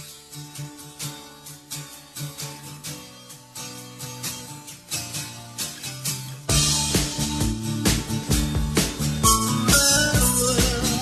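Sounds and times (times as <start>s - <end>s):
instrumental guitar music: 0.0s - 11.0s.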